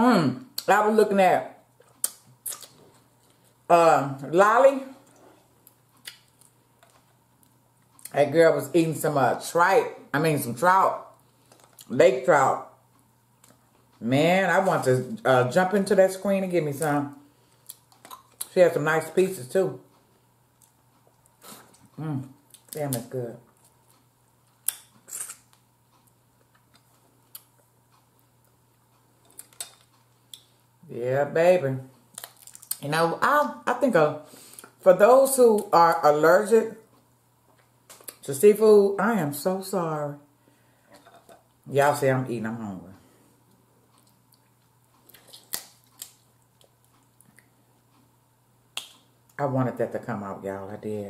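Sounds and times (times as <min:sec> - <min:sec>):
crab shell cracking: 0:32.1 - 0:32.8, 0:45.2 - 0:46.8.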